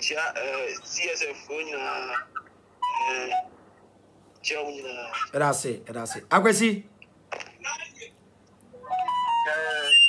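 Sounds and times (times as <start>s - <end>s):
electronic note melody: 8.8s - 9.9s.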